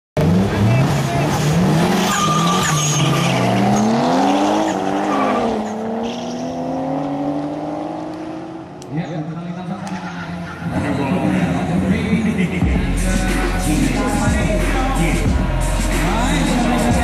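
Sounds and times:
car engines revving hard: 0.2s - 17.0s
tyres squealing: 2.0s - 6.4s.

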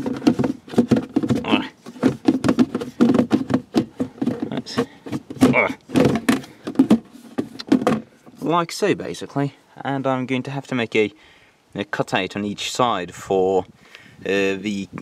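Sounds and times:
plastic creaks: 0.0s - 8.2s
plastic box clattering: 0.0s - 8.4s.

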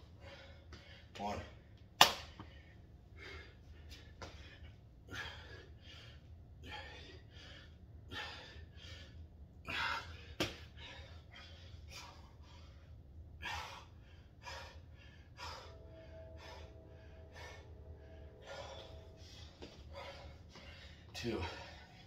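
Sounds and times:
man gasping breaths: 2.4s - 22.0s.

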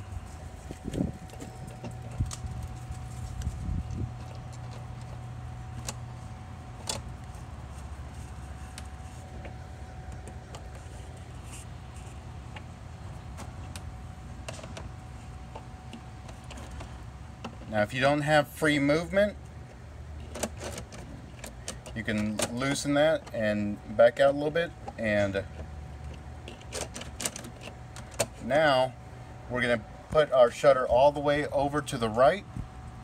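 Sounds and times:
low mechanical hum: 0.0s - 33.0s.

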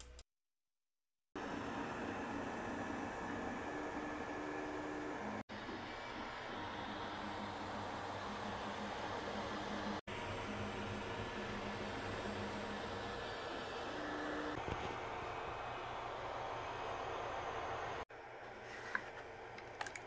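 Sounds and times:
stepper motor tones: 1.4s - 18.0s
cooling fans whirring: 1.4s - 20.0s.

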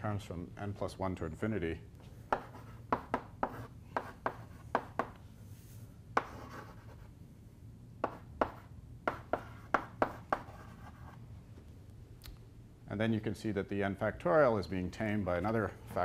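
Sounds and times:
low room hum: 0.0s - 16.0s
chalk scraping on blackboard: 2.3s - 5.2s, 6.2s - 7.1s, 8.0s - 11.2s
chalk tapping on blackboard: 2.3s - 5.2s, 6.2s - 7.0s, 8.0s - 11.2s.

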